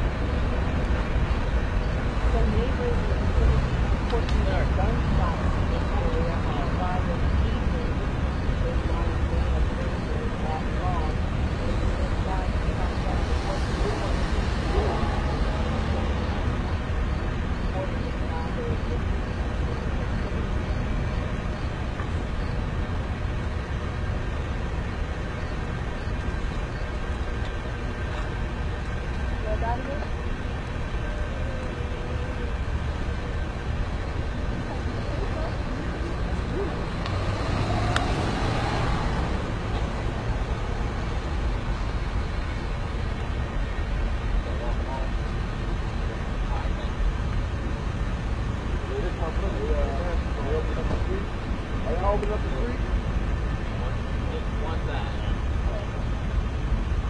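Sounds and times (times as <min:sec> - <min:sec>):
faint indistinct voices: 0:00.0 - 0:57.0
street traffic rumble: 0:00.0 - 0:57.0.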